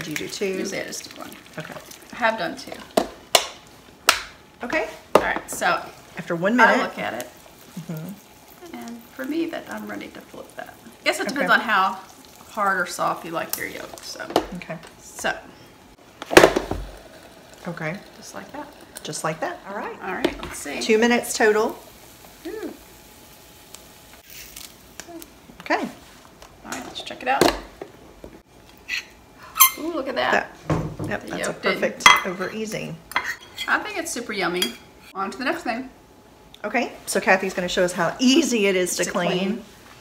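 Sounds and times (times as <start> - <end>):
egg sizzling on hot plate: 0.0 - 28.5.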